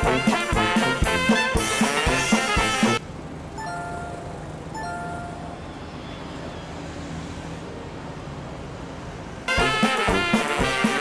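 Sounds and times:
street traffic rumble: 0:00.0 - 0:11.0
electronic chime: 0:03.6 - 0:06.0.

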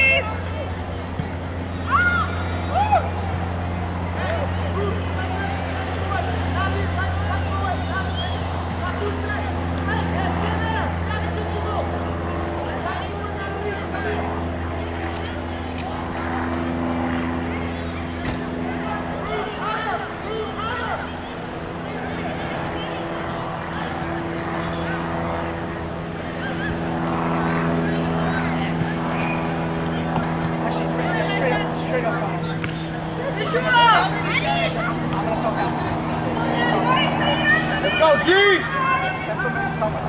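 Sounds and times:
distant voices calling out: 0:00.0 - 0:40.0
low mechanical hum: 0:00.0 - 0:40.0.

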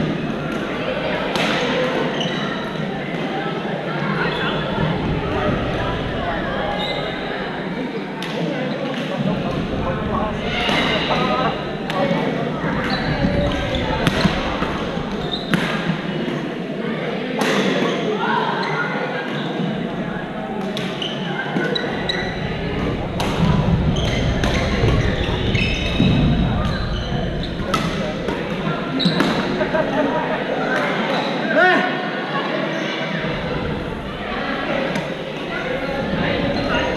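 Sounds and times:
echoing chatter of players: 0:00.0 - 0:36.9
racquets hitting shuttlecock: 0:22.8 - 0:29.6
racket hitting shuttlecock: 0:27.6 - 0:29.6.

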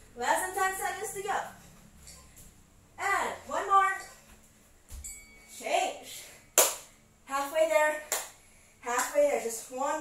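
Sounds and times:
sharp clap: 0:06.6 - 0:06.9, 0:08.1 - 0:08.4.

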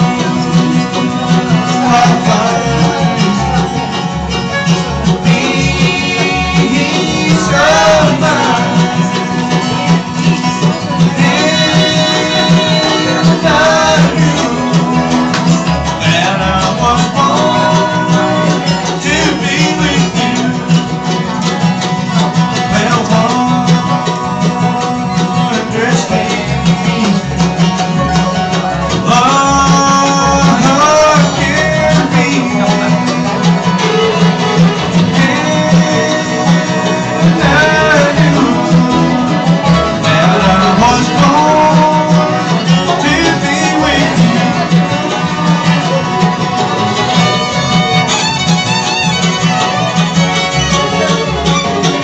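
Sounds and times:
bluegrass string band playing: 0:00.0 - 0:52.0.

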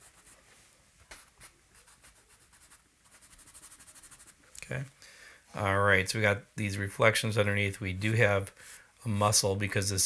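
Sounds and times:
charcoal scratching on paper: 0:00.0 - 0:00.4, 0:01.1 - 0:04.4.

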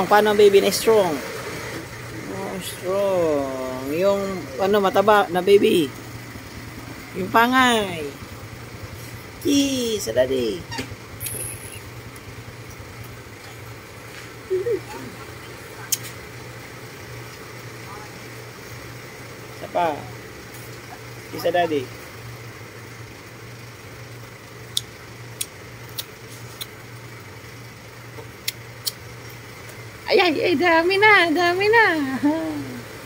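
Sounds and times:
short sharp clicks: 0:11.2 - 0:11.7.

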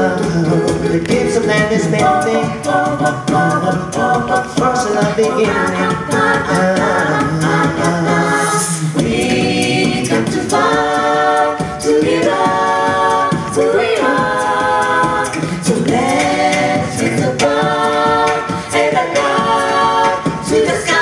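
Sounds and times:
choir singing a cappella: 0:00.0 - 0:21.0
vocal percussion beat: 0:00.0 - 0:21.0.

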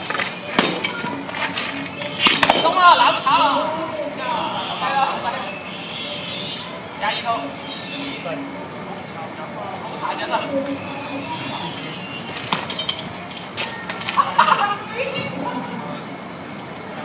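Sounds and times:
voices talking: 0:00.0 - 0:17.0.

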